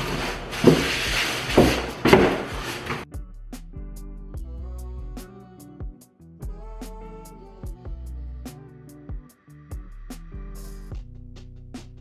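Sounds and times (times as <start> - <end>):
plastic wrap rustling: 0.0 - 3.0
foam knocking against carton: 0.6 - 3.0
background music: 2.6 - 12.0.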